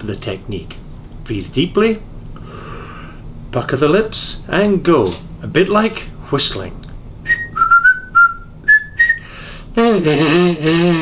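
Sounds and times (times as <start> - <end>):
person whistling short notes: 7.3 - 11.0.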